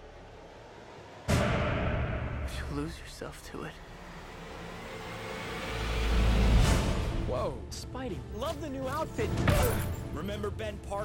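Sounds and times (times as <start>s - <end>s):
deep rumble: 0.1s - 5.2s.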